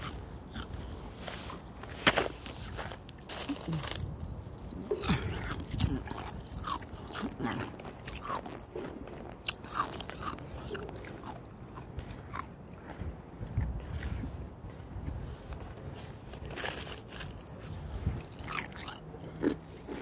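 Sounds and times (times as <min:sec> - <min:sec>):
ice being chewed: 0:00.0 - 0:20.0.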